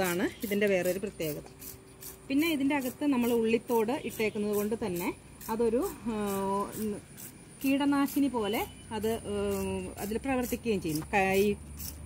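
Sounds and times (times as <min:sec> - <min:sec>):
woman speaking: 0:00.0 - 0:01.5, 0:02.3 - 0:07.0, 0:07.6 - 0:11.6.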